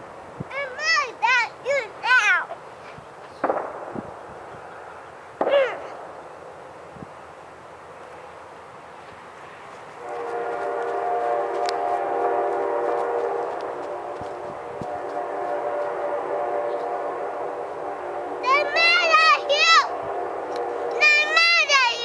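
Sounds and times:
locomotive air horn: 0:10.0 - 0:22.0.

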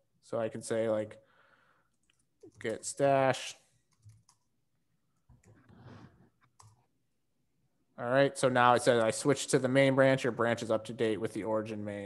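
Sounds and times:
computer keyboard keystrokes: 0:03.9 - 0:04.5.

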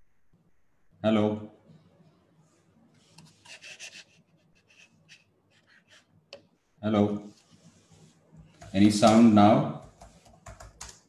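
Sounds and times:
faint scratchy rubbing: 0:02.4 - 0:06.2, 0:07.2 - 0:10.4.

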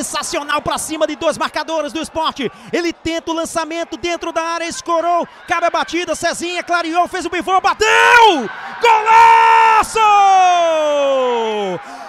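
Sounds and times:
commentator long shout: 0:00.0 - 0:11.9.

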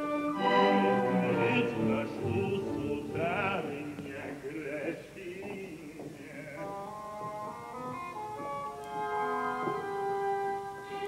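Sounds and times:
orchestra holding notes: 0:00.0 - 0:04.2, 0:07.4 - 0:11.0
man singing opera: 0:00.4 - 0:07.0.

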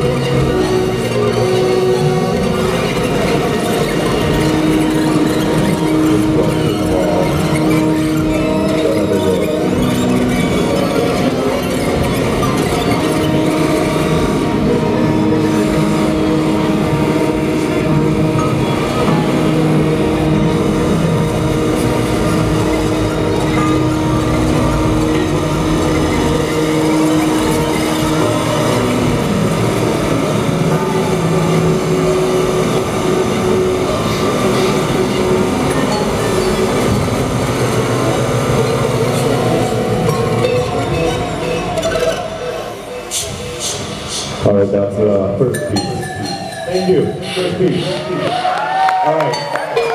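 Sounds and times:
droning held tones: 0:00.0 - 0:49.9
electronic noise music: 0:00.0 - 0:49.9.

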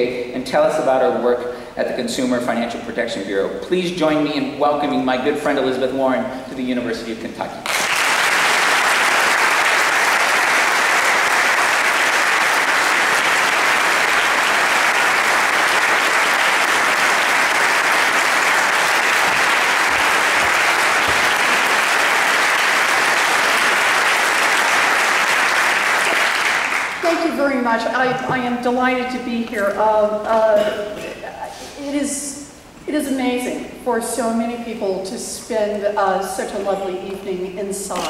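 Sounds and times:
audience applauding: 0:07.6 - 0:27.1.

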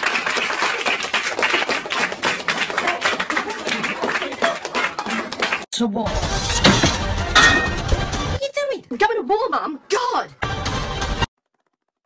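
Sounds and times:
rapid hand clapping: 0:00.0 - 0:05.6.

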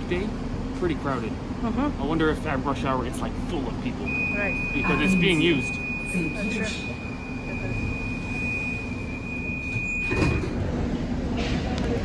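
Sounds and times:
train low rumble: 0:00.0 - 0:12.0
passengers stepping out: 0:03.6 - 0:12.0
sliding doors opening: 0:08.2 - 0:12.0.

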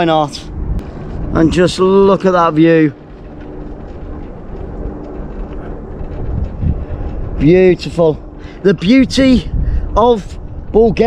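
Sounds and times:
faint steady hum: 0:00.0 - 0:11.0
wind on microphone: 0:00.0 - 0:11.0.

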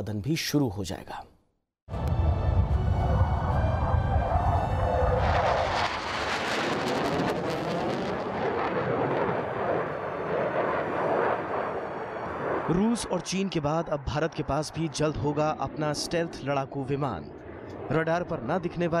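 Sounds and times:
dramatic background music: 0:01.9 - 0:04.9.

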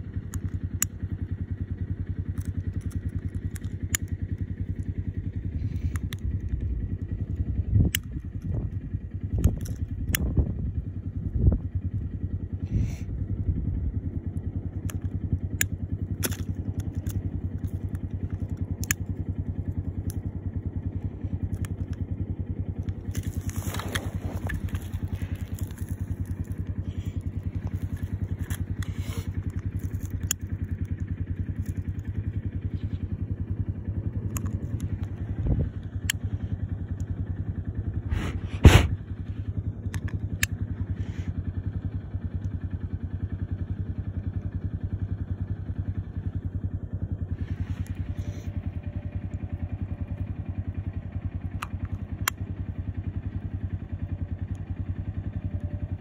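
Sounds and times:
engine idling: 0:00.0 - 0:56.0
clicks knocks and crunches: 0:16.2 - 0:19.0, 0:22.8 - 0:30.9.

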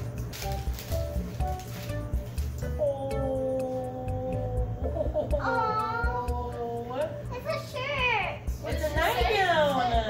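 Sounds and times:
girl making wordless sounds: 0:02.6 - 0:08.4.

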